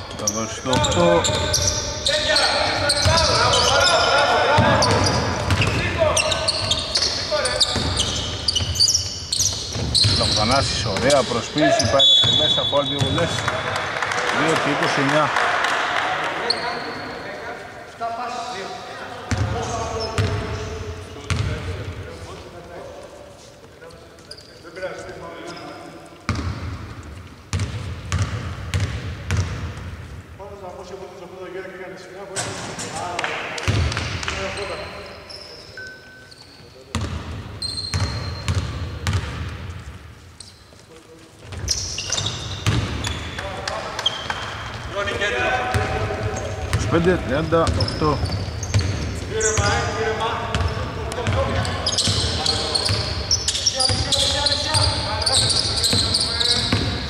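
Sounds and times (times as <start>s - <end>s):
players calling out: 0.2s - 17.2s.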